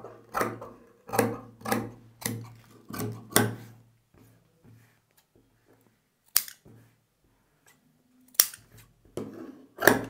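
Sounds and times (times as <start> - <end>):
scissors clicking: 6.3 - 6.6, 8.3 - 8.7.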